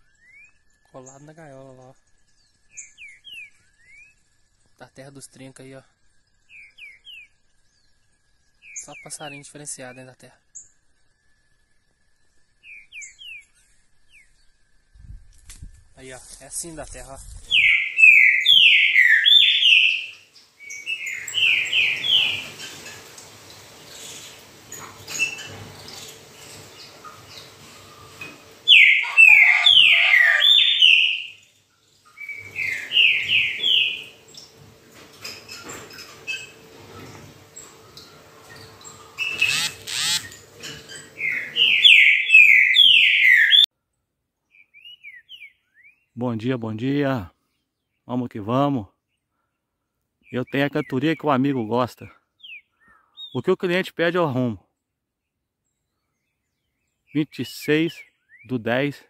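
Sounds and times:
bird singing whistled phrases: 0:00.0 - 0:00.6, 0:17.5 - 0:22.4, 0:28.7 - 0:31.4, 0:41.2 - 0:43.7.

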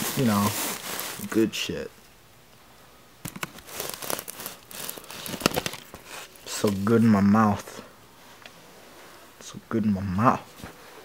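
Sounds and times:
crinkling handling noise: 0:00.0 - 0:01.6, 0:03.2 - 0:08.6.

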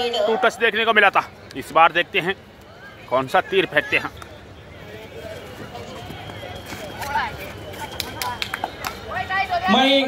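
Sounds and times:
faint mixed voices: 0:00.0 - 0:10.0.

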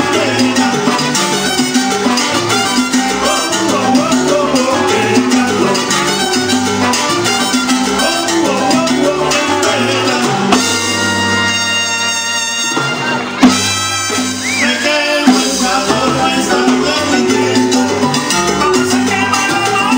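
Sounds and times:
bass notes: 0:00.0 - 0:12.2, 0:15.3 - 0:19.9
live salsa band: 0:00.0 - 0:19.9
timbales and congas rhythm: 0:00.0 - 0:19.9.

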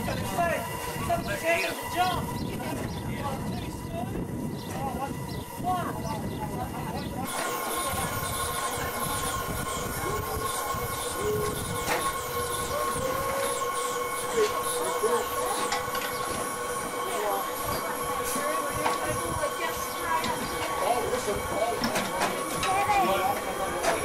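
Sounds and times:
high-pitched whine: 0:00.0 - 0:24.0
steam hissing: 0:00.0 - 0:24.0.

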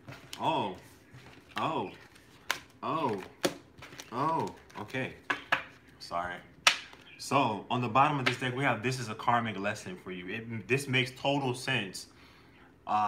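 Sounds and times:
cards clicking and snapping: 0:02.3 - 0:05.7.

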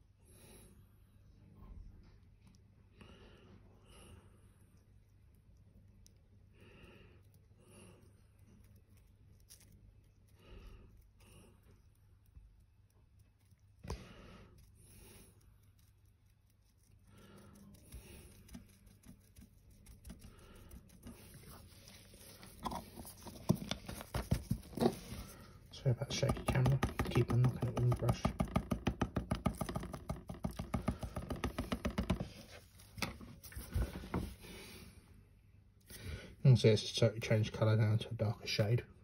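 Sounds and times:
paintbrush dabbing taps: 0:17.6 - 0:34.3
brush knocking against camera: 0:26.1 - 0:34.3.

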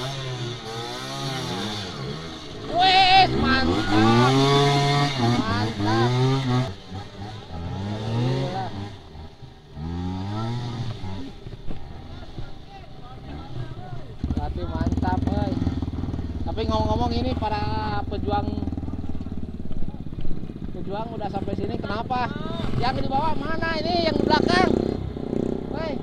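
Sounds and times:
motorcycle engines revving: 0:00.0 - 0:26.0.

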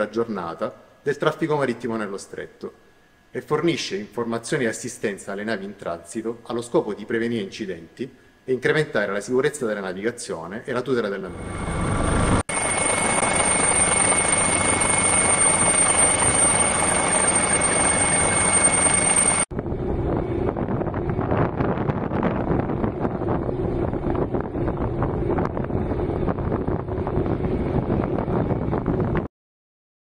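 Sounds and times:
helicopter engine and rotor: 0:11.3 - 0:21.1
low engine hum: 0:11.3 - 0:29.3
wind buffeting microphone: 0:19.5 - 0:29.3.

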